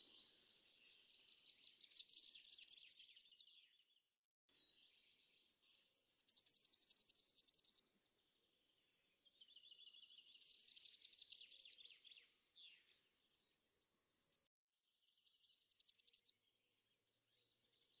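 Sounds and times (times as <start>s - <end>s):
faint bird chirps: 0.0s - 18.0s
songbird singing trill: 0.0s - 18.0s.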